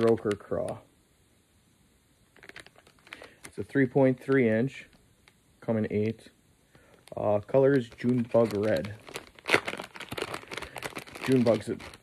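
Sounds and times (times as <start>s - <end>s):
plastic packaging crinkling: 2.3s - 5.0s, 6.8s - 12.0s.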